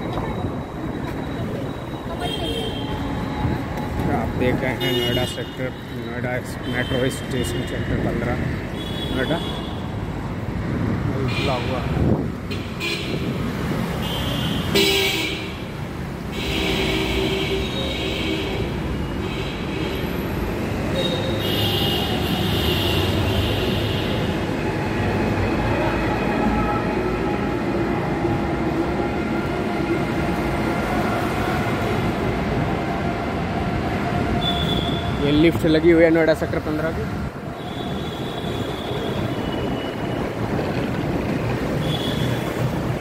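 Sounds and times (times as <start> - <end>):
road traffic passing: 0.0 - 43.0
vehicle horns honking: 4.7 - 5.6, 14.0 - 15.6, 16.3 - 20.2, 34.4 - 35.2, 37.6 - 40.0, 41.8 - 42.6.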